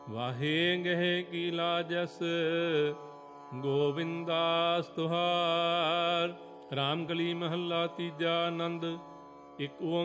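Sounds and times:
person singing melodic recitation: 0:00.0 - 0:09.0, 0:09.6 - 0:10.0.

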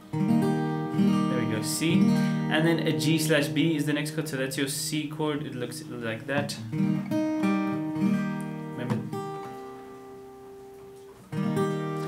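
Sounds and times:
acoustic guitar chord strummed: 0:00.0 - 0:12.0.

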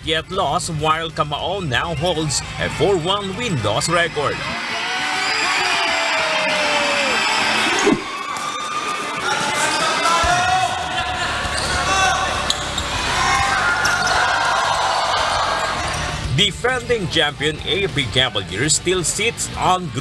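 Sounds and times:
crowd hubbub and shouts: 0:01.4 - 0:20.0.

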